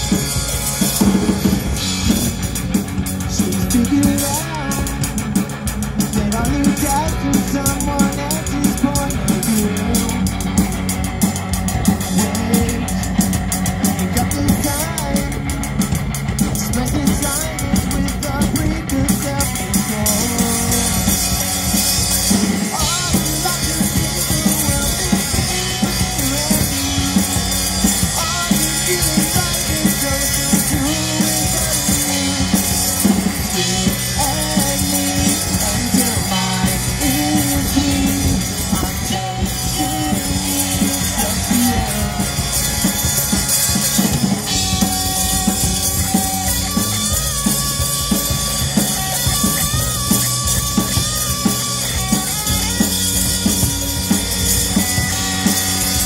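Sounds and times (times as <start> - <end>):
bass guitar: 0.0 - 56.0
drum kit beat: 0.0 - 56.0
electric guitars: 0.0 - 56.0.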